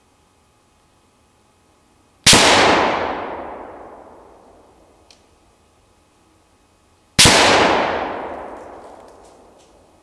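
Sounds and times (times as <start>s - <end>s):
rifle shot with echo: 2.3s - 4.9s, 7.2s - 10.0s.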